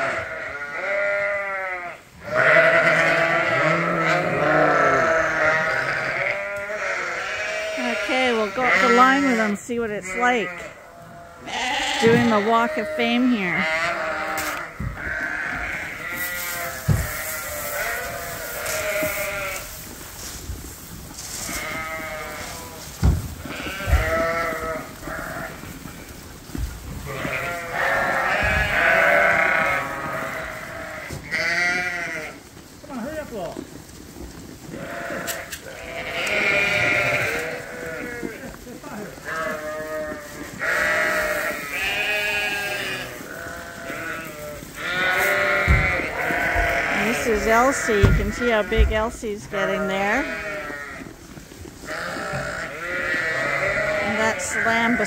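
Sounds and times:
sheep and lambs bleating: 0:00.0 - 0:20.3, 0:21.2 - 0:33.3, 0:34.6 - 0:55.0.

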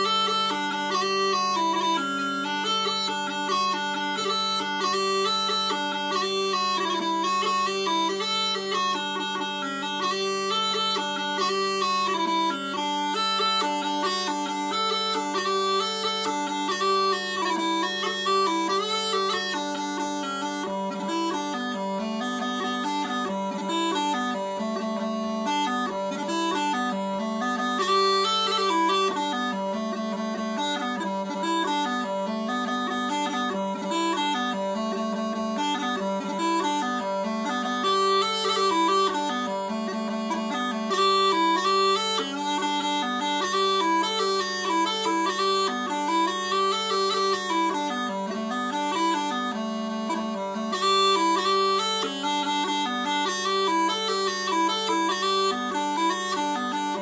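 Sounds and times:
bagpipe chanter melody: 0:00.0 - 0:57.0
bagpipe drone: 0:00.0 - 0:57.0.

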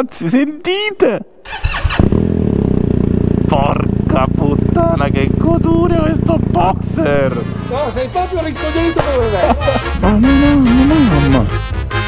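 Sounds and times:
motorcycle engine starting and idling: 0:01.4 - 0:11.3.

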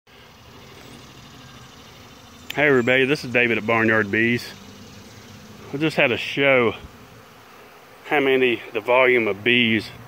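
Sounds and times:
honeybees buzzing: 0:00.1 - 0:10.0.

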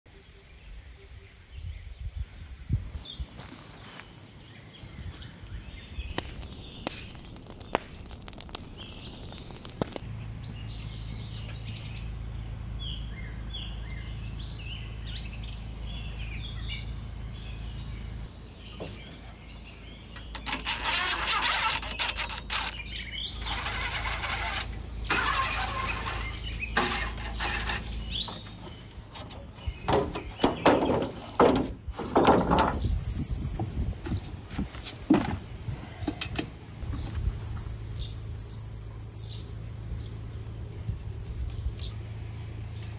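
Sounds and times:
small birds chirping: 0:00.1 - 0:42.9.

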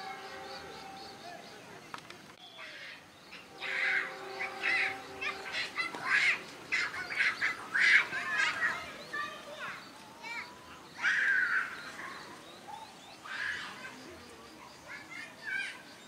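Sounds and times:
voices shouting: 0:00.0 - 0:01.7, 0:02.5 - 0:16.0
bird calls: 0:00.0 - 0:16.0.

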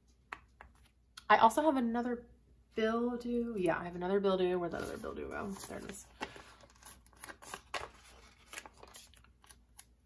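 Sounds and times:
paper sticker sheets rustling: 0:04.7 - 0:10.0.

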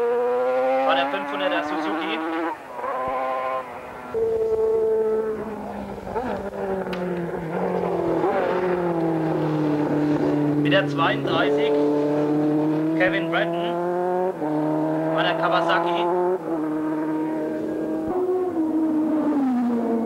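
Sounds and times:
racing motorcycle engines passing: 0:00.0 - 0:20.0.

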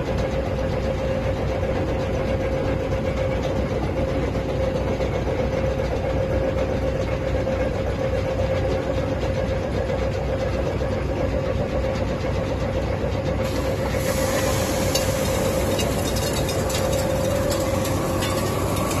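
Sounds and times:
machine rumble: 0:00.0 - 0:19.0
motor whine: 0:13.5 - 0:19.0.

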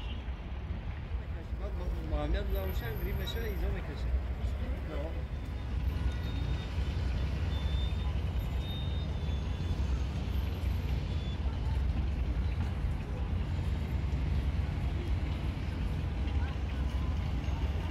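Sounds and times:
traffic rumble: 0:00.0 - 0:17.9.

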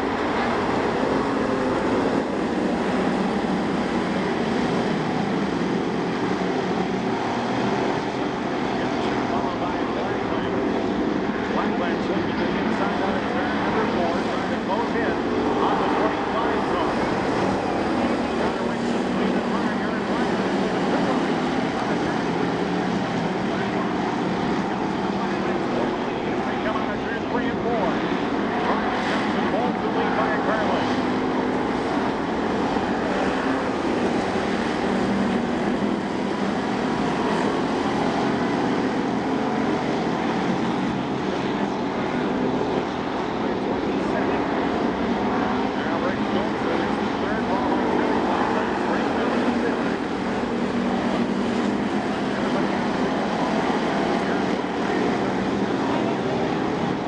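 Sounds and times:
race car engines roaring: 0:00.0 - 0:57.0.

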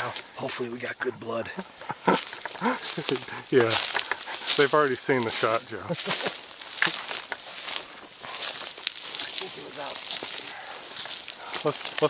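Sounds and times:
men laughing: 0:00.0 - 0:12.0
men talking: 0:00.0 - 0:12.0.

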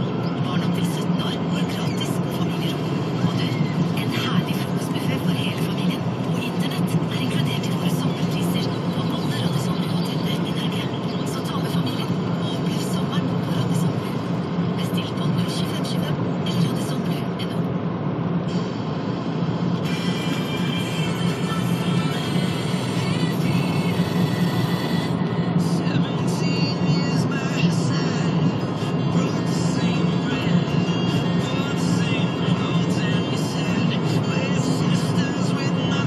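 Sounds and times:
car cabin road noise: 0:00.0 - 0:36.0.

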